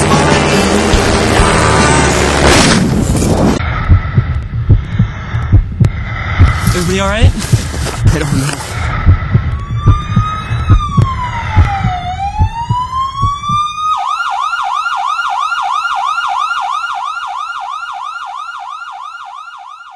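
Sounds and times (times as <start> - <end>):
low thumps and rumble: 2.4 - 13.8
emergency vehicle siren: 8.8 - 19.9.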